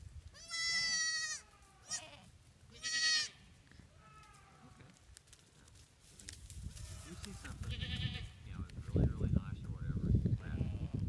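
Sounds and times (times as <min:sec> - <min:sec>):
goat kid bleating: 0:00.3 - 0:05.0, 0:06.8 - 0:08.4.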